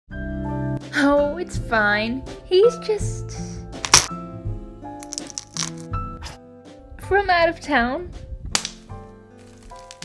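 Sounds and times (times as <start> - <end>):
gentle background music: 0.1 - 10.0
cartoon bone cracking: 3.9 - 4.2, 5.0 - 5.9, 9.6 - 10.0.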